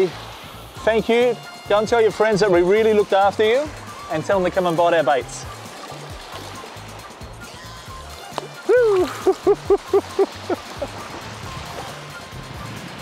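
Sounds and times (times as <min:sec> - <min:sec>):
background music with bass line: 0:00.0 - 0:13.0
small waves washing on shore: 0:00.0 - 0:13.0
man whooping: 0:08.6 - 0:10.9
man laughing: 0:08.7 - 0:11.4.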